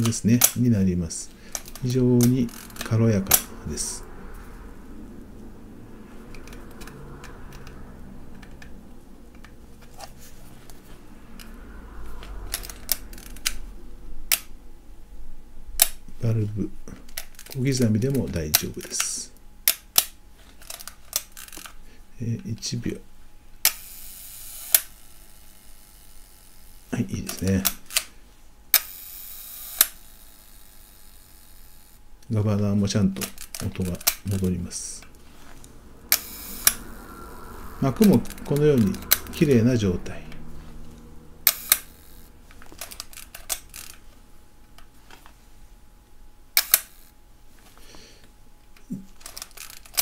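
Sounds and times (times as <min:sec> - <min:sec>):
faint shutter governor whirring: 0:00.0 - 0:04.1, 0:23.6 - 0:44.9, 0:46.5 - 0:47.2
camera shutter clicks: 0:41.5 - 0:43.9, 0:46.6 - 0:47.1.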